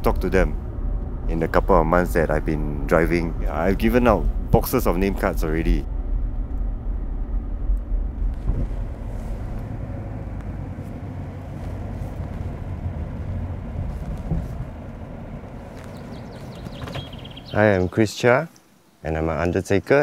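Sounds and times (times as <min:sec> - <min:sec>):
car engine and tyres rumbling: 0:00.0 - 0:18.0.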